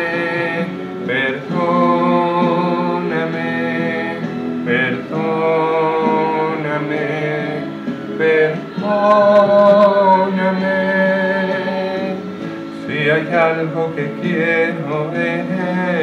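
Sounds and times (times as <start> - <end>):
instrumental backing: 0.0 - 16.0
man singing a slow ballad: 0.0 - 16.0.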